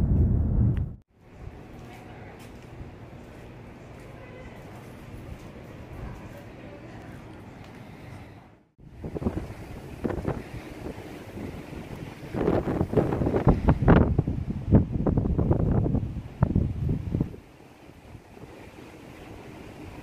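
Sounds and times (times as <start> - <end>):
wind buffeting microphone: 0.0 - 1.8, 8.8 - 20.0.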